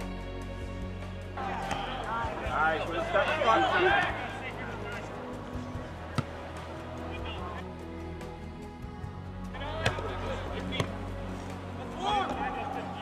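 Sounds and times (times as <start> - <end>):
soccer ball kicked: 6.0 - 6.4, 9.8 - 11.1.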